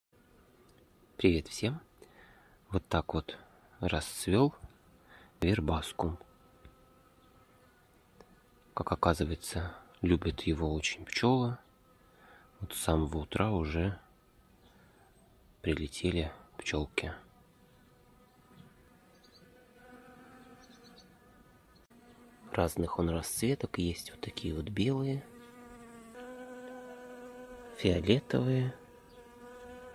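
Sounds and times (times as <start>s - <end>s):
bees buzzing faintly: 0.2s - 29.9s
bees buzzing: 17.7s - 23.0s, 23.7s - 29.9s.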